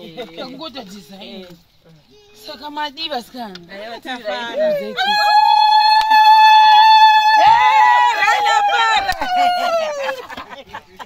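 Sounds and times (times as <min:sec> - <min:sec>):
woman's high-pitched celebratory cry: 0:04.3 - 0:10.3.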